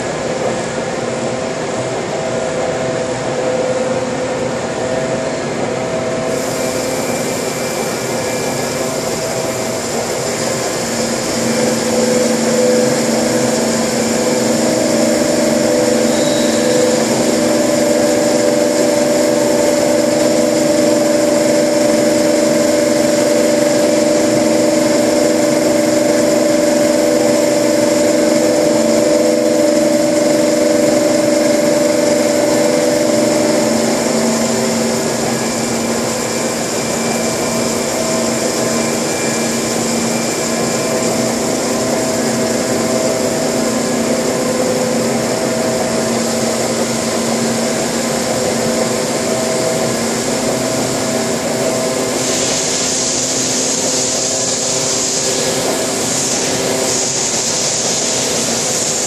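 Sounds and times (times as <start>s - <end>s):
grinding machine whining: 0.0s - 59.0s.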